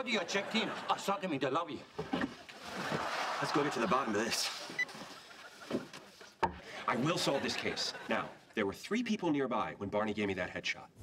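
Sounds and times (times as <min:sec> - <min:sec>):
man speaking: 0:03.4 - 0:04.7, 0:06.8 - 0:11.0.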